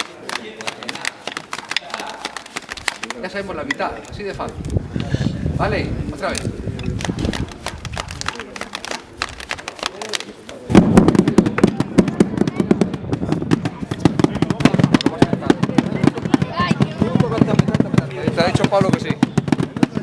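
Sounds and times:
drums beaten with wooden sticks: 0:10.7 - 0:20.0.

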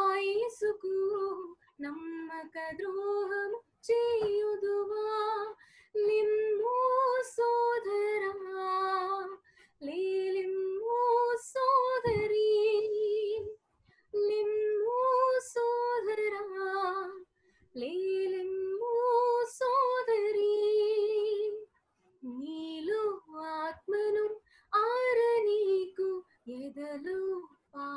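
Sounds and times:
woman singing a hymn unaccompanied: 0:00.0 - 0:13.6, 0:14.2 - 0:17.2, 0:17.8 - 0:21.6, 0:22.2 - 0:27.9.

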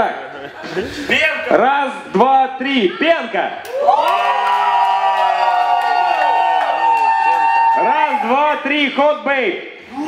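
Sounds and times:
crowd cheering and screaming: 0:03.7 - 0:08.6.

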